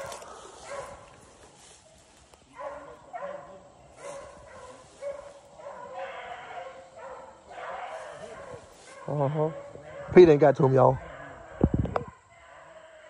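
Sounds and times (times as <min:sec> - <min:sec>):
hounds baying: 0:00.0 - 0:13.0.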